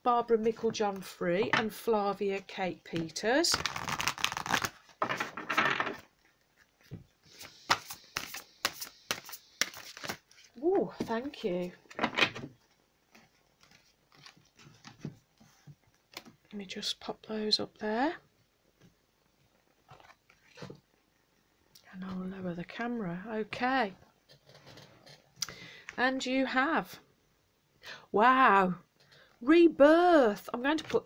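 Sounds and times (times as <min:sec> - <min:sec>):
cards being shuffled: 0:02.9 - 0:10.6, 0:13.1 - 0:15.1.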